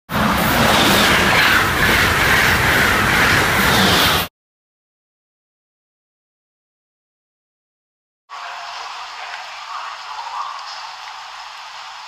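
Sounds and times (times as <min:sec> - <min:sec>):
high-speed train passing: 0:00.1 - 0:04.3.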